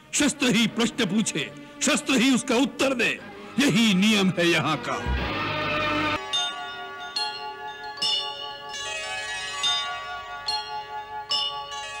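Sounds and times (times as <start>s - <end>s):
bell-like chimes melody: 6.2s - 12.0s.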